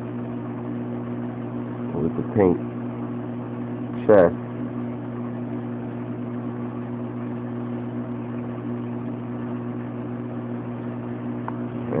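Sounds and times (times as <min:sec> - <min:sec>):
aquarium pump humming: 0:00.0 - 0:12.0.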